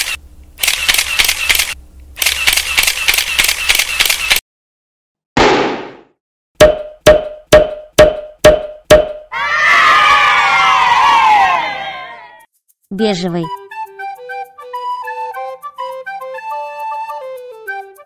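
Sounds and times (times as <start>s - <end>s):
voices cheering: 9.3s - 12.5s.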